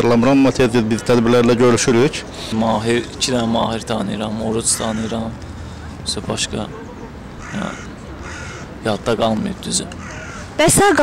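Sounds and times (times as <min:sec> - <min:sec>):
outdoor background noise: 0:00.0 - 0:11.0
crow cawing: 0:04.6 - 0:05.4, 0:07.3 - 0:08.8, 0:09.9 - 0:10.7.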